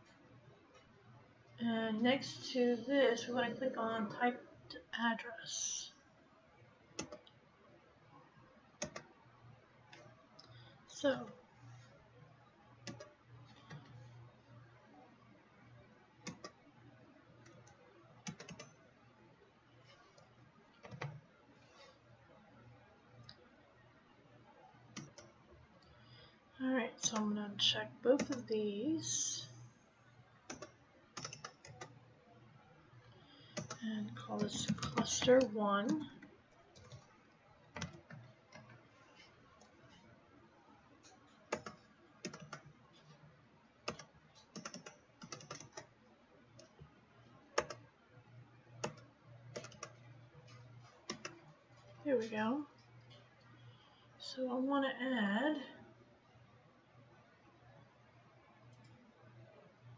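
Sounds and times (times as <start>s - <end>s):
faint low hum: 0.0s - 59.9s
computer keyboard typing: 7.0s - 7.3s, 8.8s - 9.1s, 12.8s - 14.0s, 16.2s - 16.6s, 17.4s - 18.8s, 19.9s - 21.2s, 24.9s - 25.3s, 28.2s - 28.5s, 30.5s - 32.0s, 33.5s - 38.8s, 41.0s - 43.2s, 43.8s - 45.9s, 47.5s - 47.9s, 48.8s - 52.3s.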